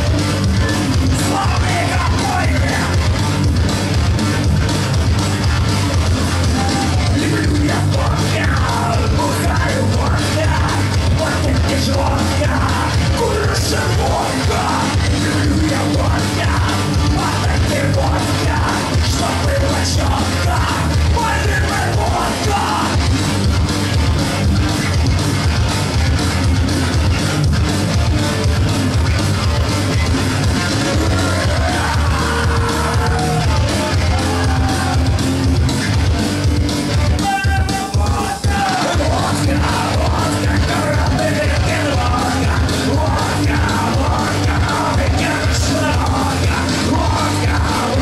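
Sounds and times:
bass guitar: 0:00.0 - 0:48.0
distorted electric guitar: 0:00.0 - 0:48.0
drums: 0:00.0 - 0:48.0
singer yelling into microphone: 0:01.1 - 0:03.0, 0:06.5 - 0:23.0, 0:37.1 - 0:48.0.

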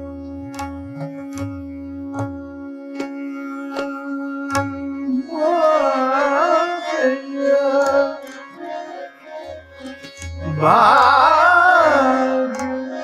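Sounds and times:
tabla strokes: 0:00.0 - 0:05.0, 0:09.7 - 0:12.7
tanpura drone: 0:00.0 - 0:13.0
man singing: 0:02.8 - 0:08.8, 0:10.4 - 0:13.0.

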